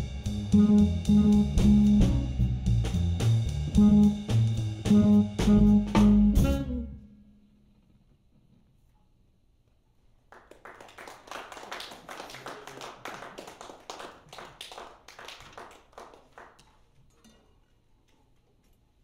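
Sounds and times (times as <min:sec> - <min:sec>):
audience applauding: 0:10.3 - 0:16.6.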